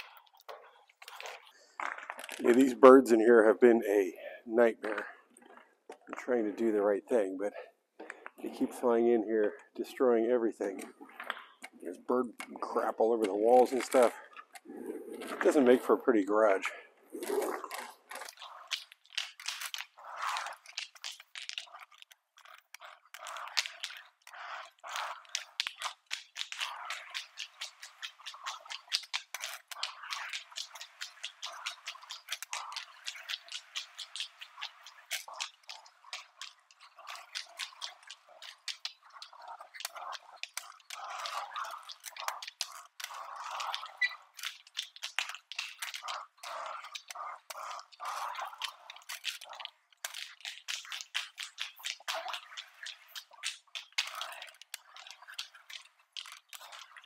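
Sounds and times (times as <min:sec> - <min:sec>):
squeegee scraping wet concrete: 0:00.0 - 0:57.0.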